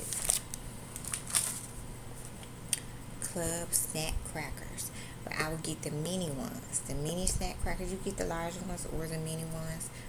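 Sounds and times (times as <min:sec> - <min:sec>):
snack packaging rustling and tapping: 0:00.0 - 0:02.6
faint low hum: 0:00.0 - 0:10.0.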